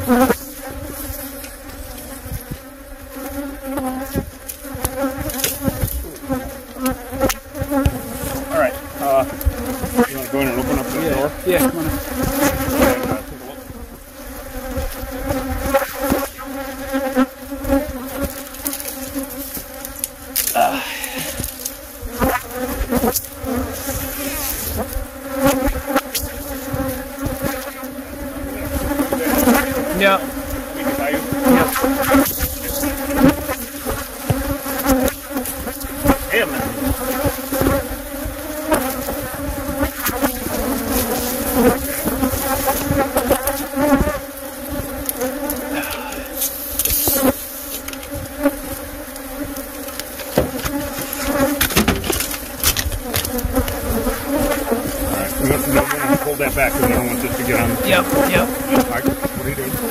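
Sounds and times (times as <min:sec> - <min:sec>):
bees buzzing: 0:00.0 - 0:59.9
handling knocks and rustles: 0:49.9 - 0:54.9.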